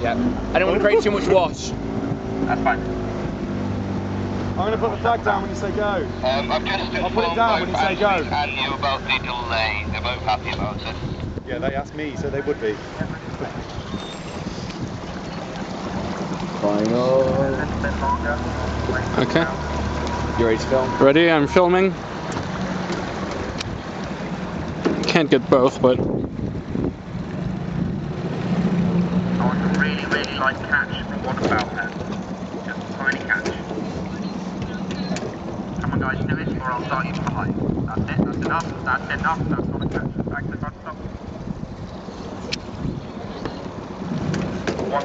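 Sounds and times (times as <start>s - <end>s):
wind buffeting microphone: 0.0s - 45.0s.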